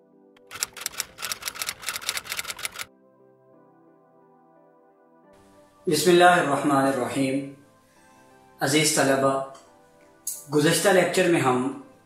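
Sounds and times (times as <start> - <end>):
faint background music: 0.0 - 12.0
typewriter keystroke clacks: 0.4 - 2.9.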